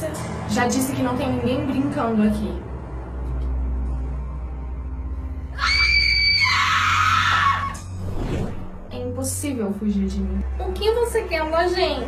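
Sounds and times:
horror music with low drone: 0:00.0 - 0:12.0
young woman screaming: 0:05.6 - 0:07.8.

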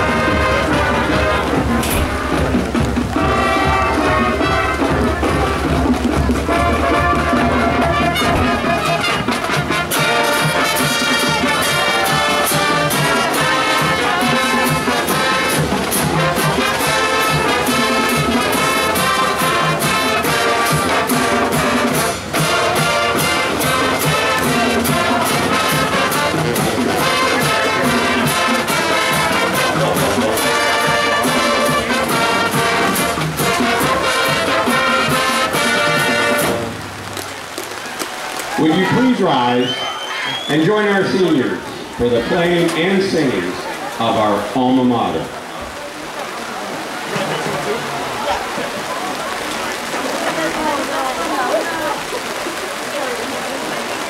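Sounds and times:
drum line beat: 0:00.0 - 0:36.8
marching band brass: 0:00.0 - 0:54.0.

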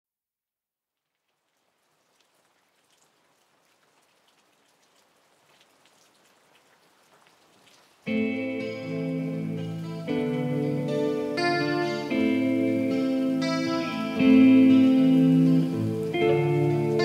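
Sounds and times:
raindrops ticking: 0:00.9 - 0:17.0
rain hiss: 0:01.0 - 0:17.0.

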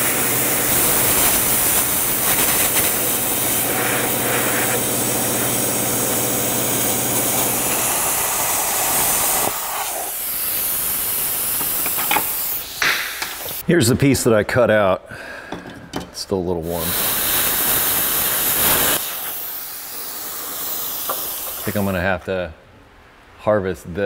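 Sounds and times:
plasma cutter hissing: 0:00.0 - 0:13.6, 0:16.6 - 0:22.0.

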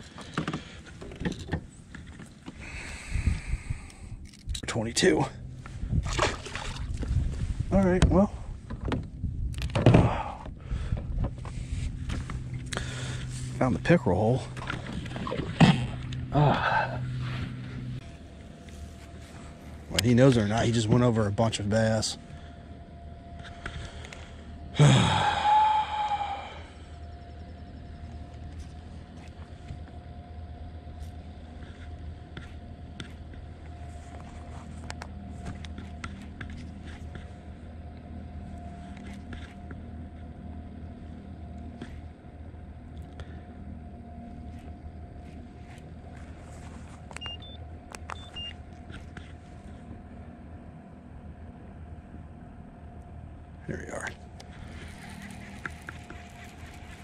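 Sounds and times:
electric motor whining: 0:54.2 - 0:57.0.

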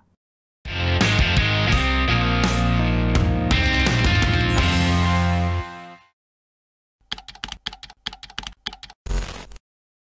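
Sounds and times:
keyboard key clicks: 0:07.1 - 0:09.0.

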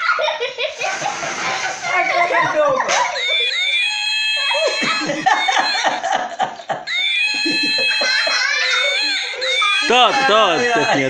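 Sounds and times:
electronic toy laugh: 0:00.0 - 0:11.0.

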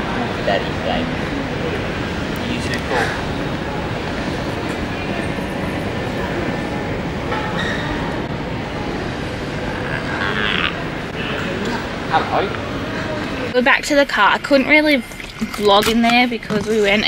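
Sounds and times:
airport terminal rumble: 0:00.0 - 0:17.0.

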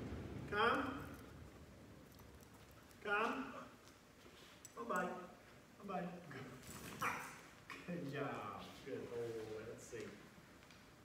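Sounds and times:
puppy barking: 0:07.0 - 0:07.4.

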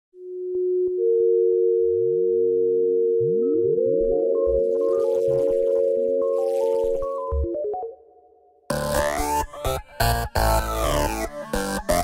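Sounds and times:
held synthesizer tones: 0:01.2 - 0:07.9.

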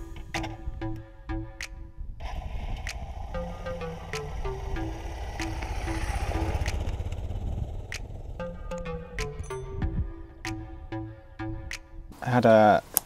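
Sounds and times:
background music with short notes: 0:00.0 - 0:02.2, 0:03.4 - 0:07.6, 0:08.4 - 0:12.2
motorcycle engine pulling away: 0:02.2 - 0:10.4.

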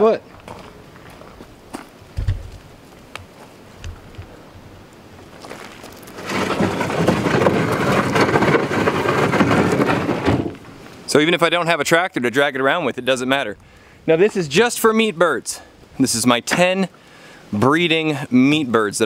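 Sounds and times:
low thumps: 0:02.2 - 0:02.6
coop scraping over dirt: 0:05.4 - 0:11.0.

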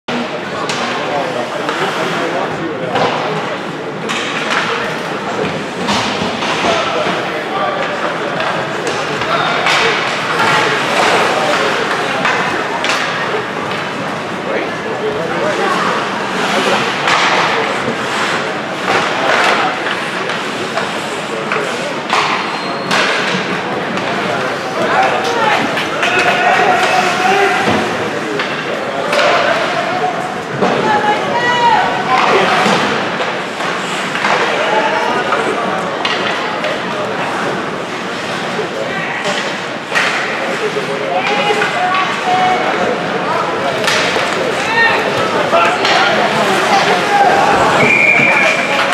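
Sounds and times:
spectators talking and calling out: 0:00.0 - 0:48.9.

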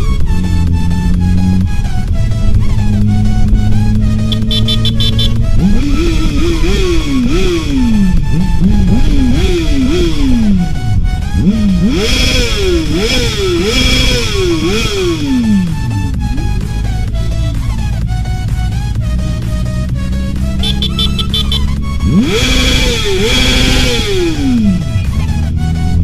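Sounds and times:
motorcycle engine revving: 0:00.0 - 0:26.0
electronic dance music: 0:04.3 - 0:06.1, 0:20.6 - 0:25.4.

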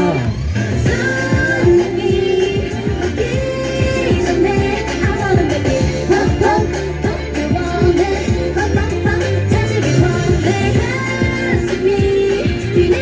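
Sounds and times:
dance pop music through speaker: 0:00.0 - 0:13.0
woman singing: 0:00.8 - 0:13.0.

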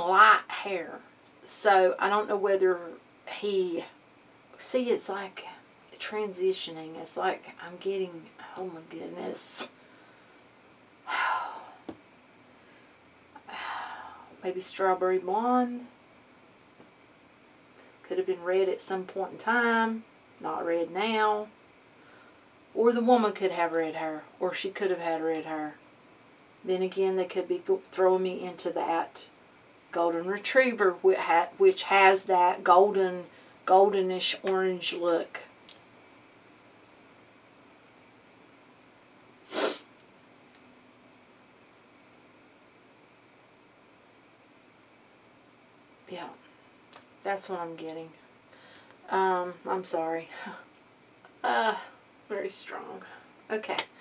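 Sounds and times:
woman speaking: 0:00.0 - 0:04.0, 0:04.6 - 0:09.7, 0:13.4 - 0:15.9, 0:18.0 - 0:21.6, 0:22.8 - 0:25.8, 0:26.6 - 0:29.3, 0:29.9 - 0:35.6, 0:46.1 - 0:46.4, 0:47.2 - 0:48.2, 0:49.0 - 0:50.7, 0:51.4 - 0:53.9
short sharp burst of breath: 0:39.4 - 0:39.9.

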